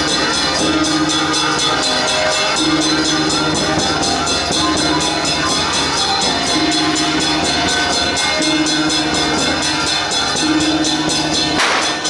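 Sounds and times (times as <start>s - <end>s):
cymbals crashing: 0.0s - 12.0s
gong: 0.0s - 12.0s
large barrel drum beating: 0.0s - 12.0s.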